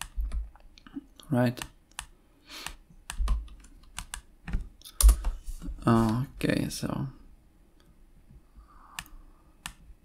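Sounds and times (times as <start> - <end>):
computer keyboard keystrokes: 1.6 - 5.3.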